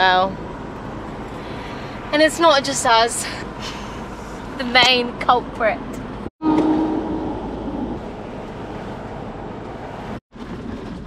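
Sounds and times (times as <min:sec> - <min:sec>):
van engine and road noise: 0:00.0 - 0:11.0
wind through open window: 0:00.0 - 0:11.0
steady hum: 0:06.4 - 0:08.6.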